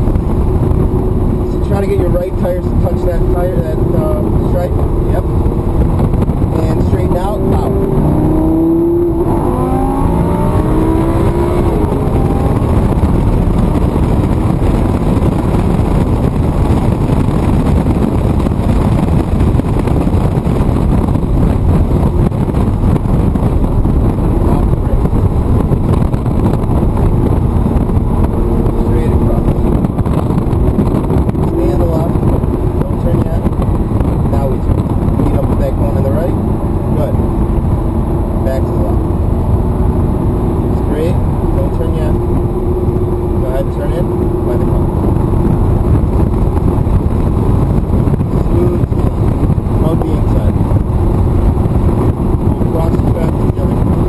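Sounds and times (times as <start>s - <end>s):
car engine accelerating: 0.0s - 54.0s
road and wind noise: 0.0s - 54.0s.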